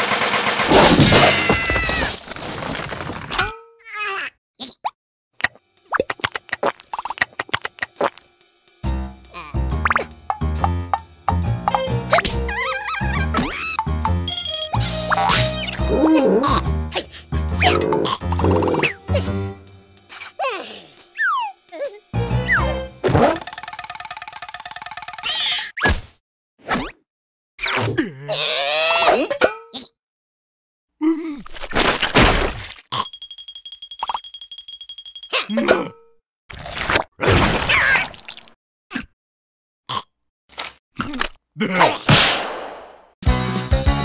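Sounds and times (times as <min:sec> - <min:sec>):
background music: 0:08.7 - 0:21.2, 0:22.0 - 0:23.4, 0:43.2 - 0:44.0.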